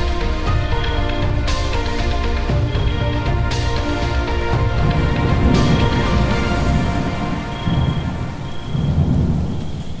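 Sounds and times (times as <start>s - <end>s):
steady rain: 0.0s - 10.0s
sustained music: 0.0s - 10.0s
low rolling thunder: 4.8s - 10.0s.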